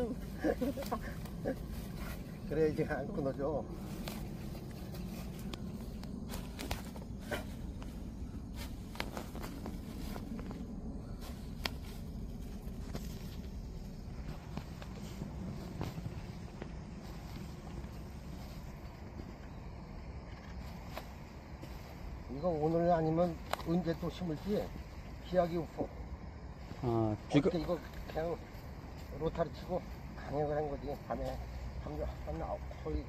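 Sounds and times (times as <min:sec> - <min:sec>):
steady low rumble: 0:00.0 - 0:33.0
footsteps on soil: 0:03.8 - 0:19.6.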